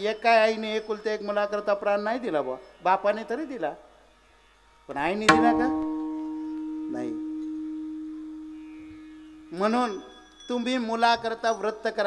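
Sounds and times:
ringing struck note: 5.0s - 11.0s.

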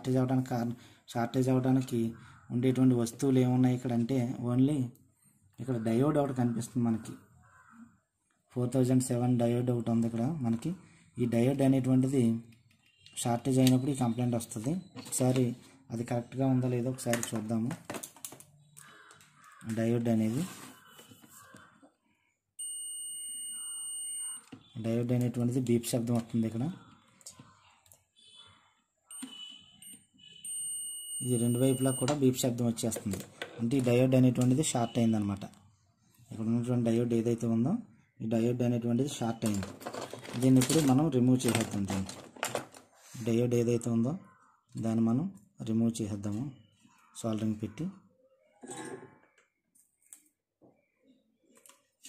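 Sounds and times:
man speaking: 5.6s - 7.2s, 19.7s - 20.7s, 24.8s - 27.4s, 31.2s - 35.6s, 47.2s - 48.0s
man talking: 5.6s - 7.2s, 8.6s - 12.5s, 13.2s - 17.8s, 19.6s - 20.7s, 24.8s - 26.9s, 31.2s - 35.6s, 40.3s - 42.2s, 43.2s - 46.6s, 47.2s - 48.0s.

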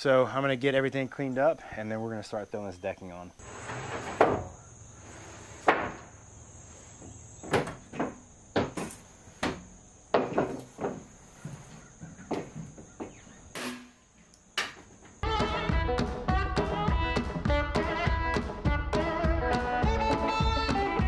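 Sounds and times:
wood knocking on wood: 7.4s - 13.2s.

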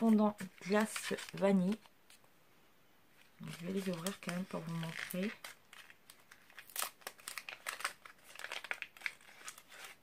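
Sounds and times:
packaging crinkling: 0.0s - 1.9s, 3.2s - 10.0s.

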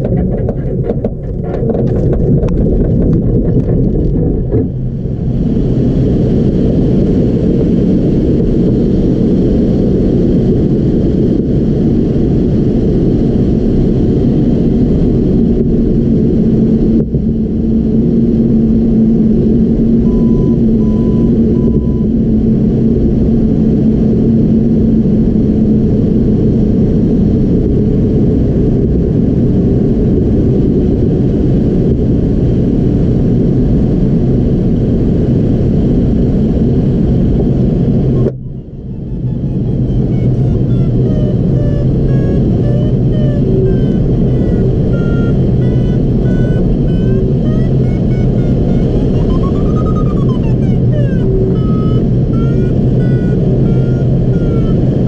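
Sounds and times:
variometer beeping: 20.0s - 22.2s, 38.2s - 55.0s
airflow rushing over cockpit: 35.7s - 55.0s.

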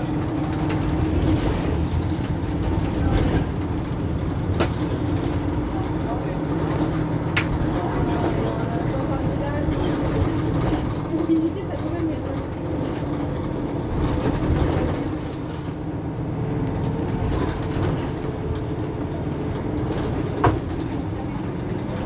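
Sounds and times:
bus diesel engine drone: 0.0s - 22.0s.

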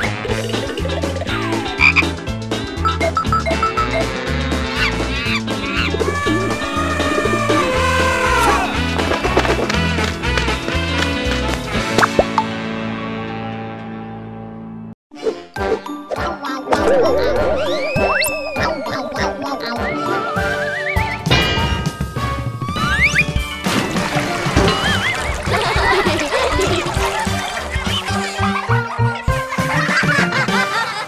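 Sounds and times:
cartoon music with croaky bass: 0.0s - 10.0s, 15.6s - 21.4s
falling glide sound effect: 5.7s - 9.0s, 16.7s - 21.3s.

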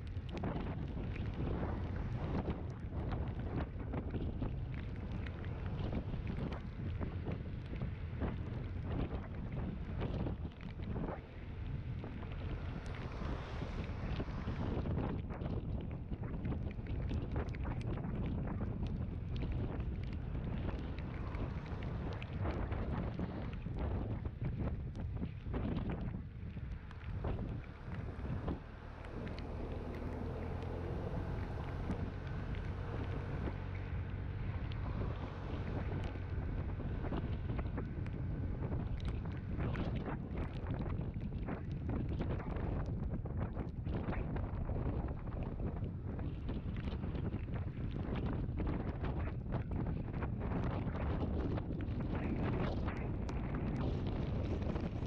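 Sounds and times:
wind rumble on microphone: 0.0s - 55.0s
scooter engine drone: 26.7s - 41.4s.

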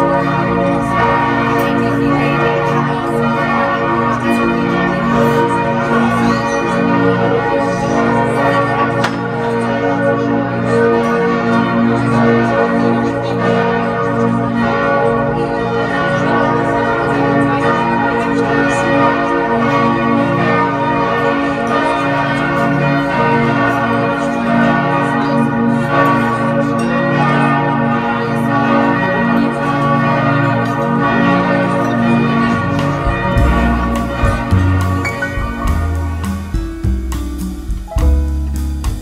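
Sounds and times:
church bells ringing: 0.0s - 37.3s.

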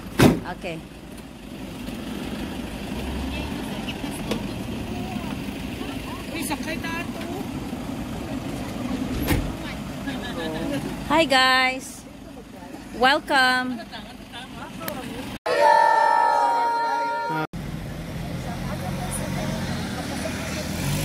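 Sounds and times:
vehicles driving past: 0.0s - 21.0s.

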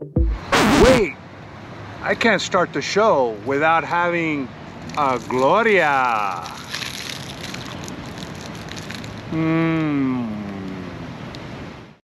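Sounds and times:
cellophane wrapper crinkling: 4.9s - 9.3s.

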